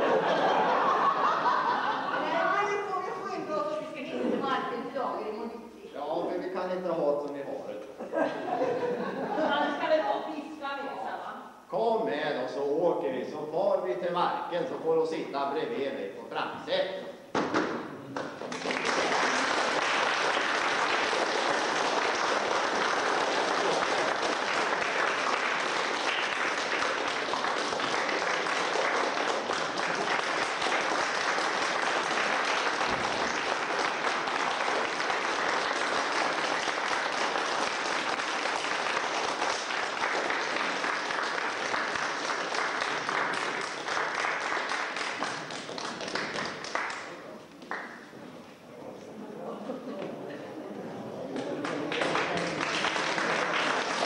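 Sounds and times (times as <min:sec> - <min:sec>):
audience applauding: 0:00.0 - 0:03.0, 0:18.1 - 0:48.1, 0:51.3 - 0:54.0.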